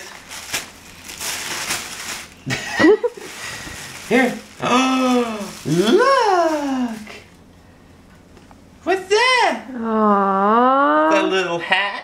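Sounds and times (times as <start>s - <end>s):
paper bag and tissue rustling: 0.0s - 7.3s
person exclaiming: 4.6s - 7.1s.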